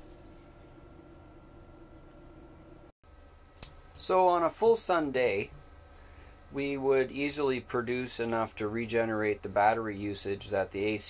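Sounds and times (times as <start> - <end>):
air conditioner hum: 0.0 - 11.0.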